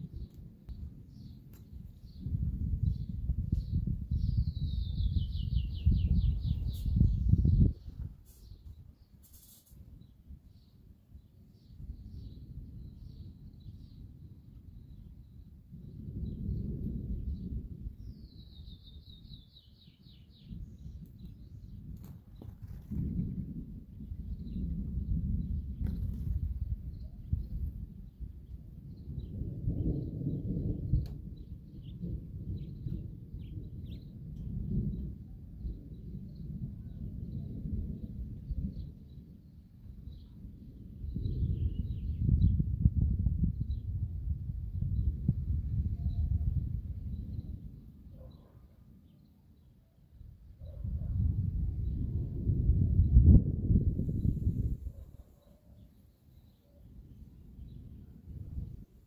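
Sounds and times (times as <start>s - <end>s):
distant thunder rumble: 15.5s - 48.3s, 50.4s - 55.2s, 57.0s - 59.0s.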